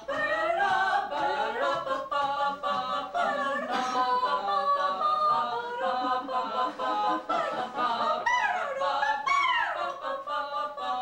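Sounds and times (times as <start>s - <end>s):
voices singing in harmony: 0.0s - 11.0s.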